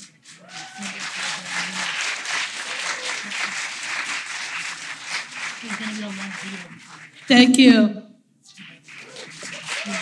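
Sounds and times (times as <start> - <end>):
audience applauding: 0.0 - 7.5, 8.5 - 10.0.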